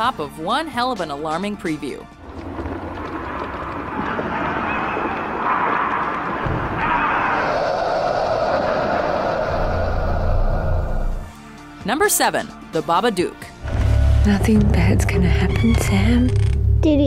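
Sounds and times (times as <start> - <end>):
deep rumble: 2.1 - 7.2.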